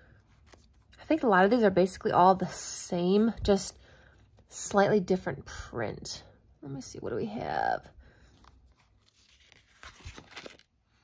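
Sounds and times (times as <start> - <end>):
paper rustling: 0.1 - 1.0, 8.3 - 11.0.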